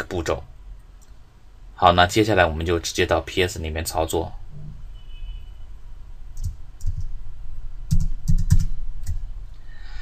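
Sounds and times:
computer keyboard keys clicking: 0:06.4 - 0:07.1, 0:07.9 - 0:09.2.

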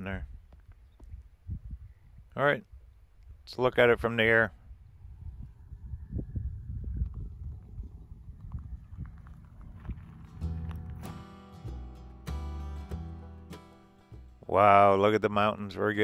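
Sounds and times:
wind buffeting microphone: 0:00.0 - 0:11.3
background music sustained chords: 0:10.1 - 0:14.3.

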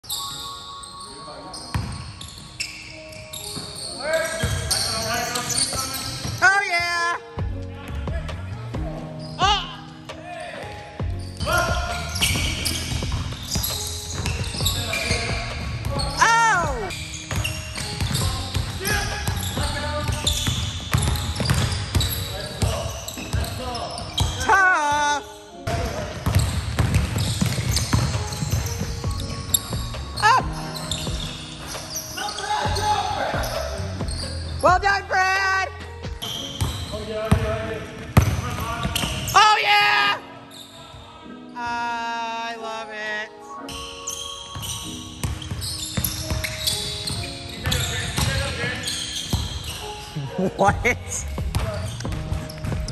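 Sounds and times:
sneakers squeaking: 0:00.0 - 0:41.9, 0:43.6 - 0:52.9
players' voices echoing: 0:03.7 - 0:43.4, 0:46.3 - 0:52.9
basketball bouncing: 0:11.0 - 0:24.5, 0:25.7 - 0:30.0, 0:36.1 - 0:39.4, 0:44.5 - 0:49.9, 0:51.2 - 0:52.9.

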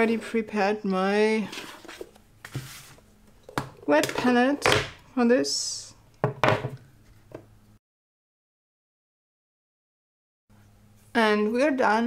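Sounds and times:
plastic case knocking on table: 0:06.2 - 0:06.8.

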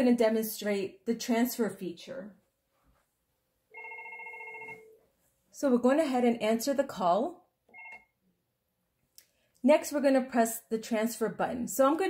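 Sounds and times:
desk phone ringing: 0:03.7 - 0:05.0, 0:07.7 - 0:08.2.

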